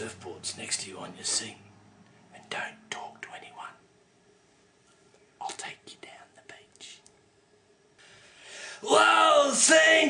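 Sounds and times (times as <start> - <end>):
man whispering: 2.3 - 3.9, 5.4 - 7.2.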